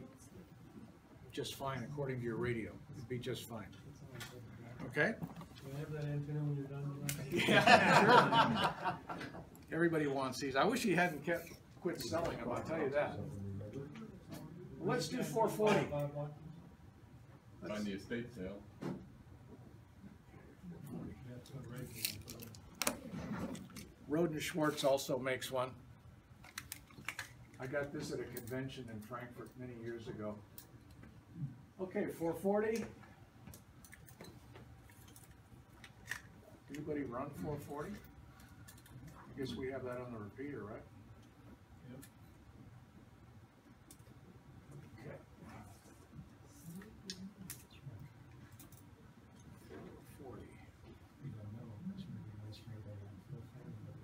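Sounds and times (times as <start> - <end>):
faint low murmur: 0.0 - 26.4, 27.2 - 54.0.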